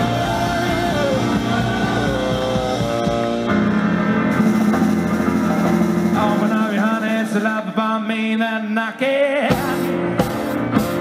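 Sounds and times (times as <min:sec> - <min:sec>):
saxophone melody: 0:00.0 - 0:07.3
drum kit: 0:00.0 - 0:07.6, 0:09.5 - 0:11.0
keyboard playing: 0:00.0 - 0:11.0.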